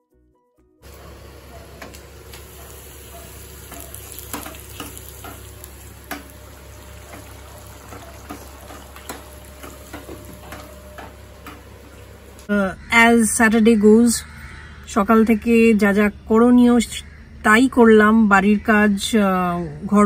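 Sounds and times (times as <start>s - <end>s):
curry sizzling in a pan: 0.9s - 12.5s
spoon stirring against pan: 1.7s - 12.4s.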